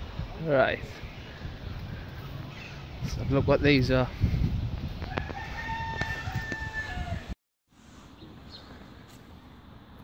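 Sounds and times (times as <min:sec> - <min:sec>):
rooster crowing: 0:05.0 - 0:07.4.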